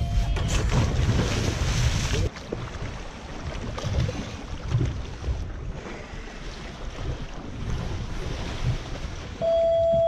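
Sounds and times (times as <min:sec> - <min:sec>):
sea water splashing: 0:00.1 - 0:10.0.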